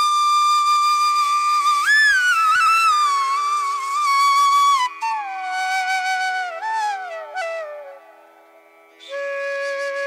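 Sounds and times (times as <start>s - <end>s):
flute music: 0.0s - 10.0s.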